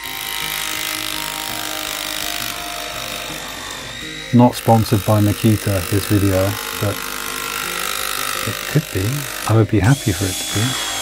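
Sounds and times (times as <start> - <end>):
jigsaw cutting hardboard: 0.0 - 11.0.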